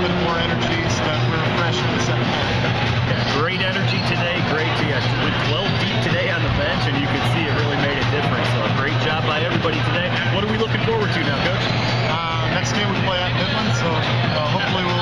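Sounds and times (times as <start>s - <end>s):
people talking: 0.0s - 2.6s, 3.2s - 15.0s
loud background music: 0.0s - 15.0s.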